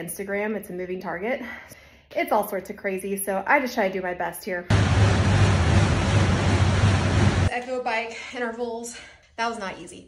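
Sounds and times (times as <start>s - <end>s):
exercise bike fan rushing: 4.7s - 7.5s.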